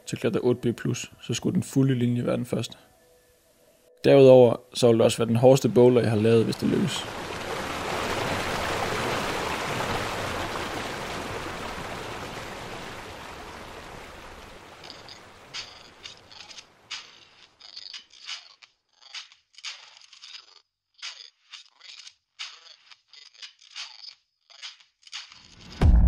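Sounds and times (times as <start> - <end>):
river rushing over rocks: 7.0 - 16.1.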